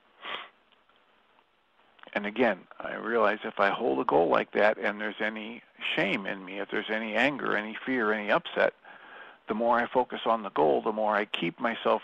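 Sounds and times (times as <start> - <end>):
man breathing in: 8.8 - 9.4.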